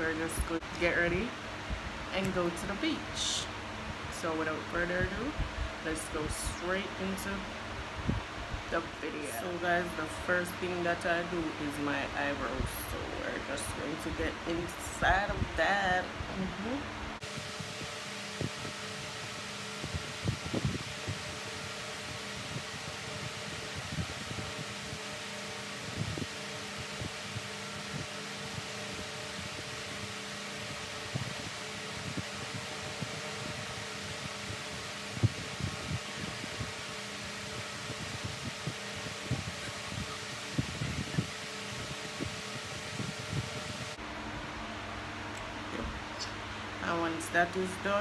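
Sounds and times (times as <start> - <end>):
electric fan whirring: 0.0 - 48.0.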